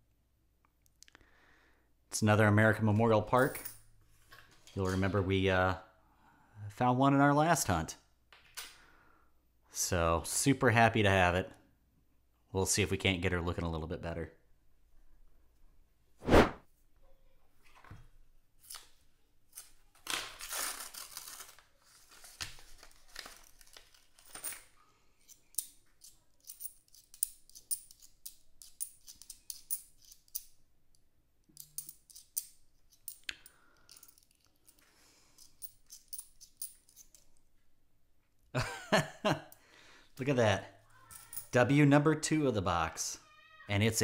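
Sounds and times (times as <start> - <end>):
paper coin roll tearing: 19.6 - 24.2
coins clicking together: 25.2 - 30.5, 31.5 - 37.3, 41.1 - 41.5.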